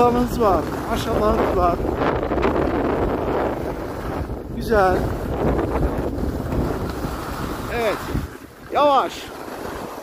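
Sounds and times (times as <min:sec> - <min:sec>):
skis sliding on packed snow: 0:00.0 - 0:10.0
wind rushing over microphone: 0:00.0 - 0:10.0.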